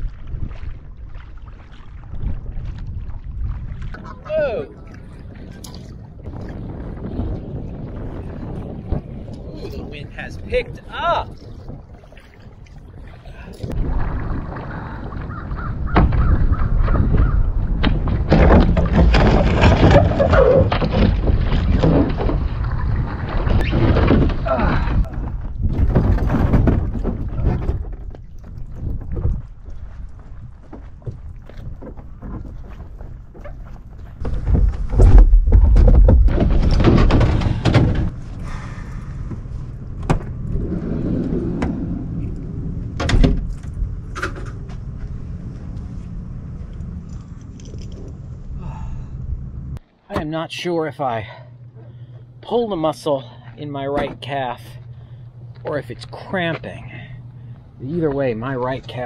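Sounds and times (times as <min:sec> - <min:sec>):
wind rumbling on microphone: 0:00.0 - 0:49.8
kayak hauled out of water: 0:10.5 - 0:48.9
gear knocking and clunking: 0:30.7 - 0:38.2.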